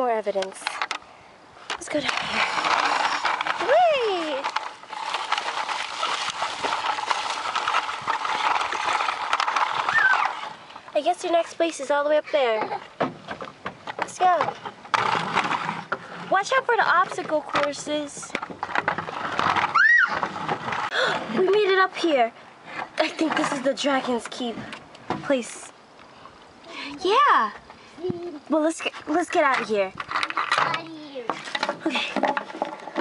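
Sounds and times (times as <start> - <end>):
noisy rustle: 0.0 - 33.0
toy car crunching over leaves and gravel: 1.8 - 12.5, 14.1 - 22.2, 28.6 - 33.0
child squealing: 9.9 - 10.4, 19.7 - 20.2
child saying a word: 30.6 - 31.3.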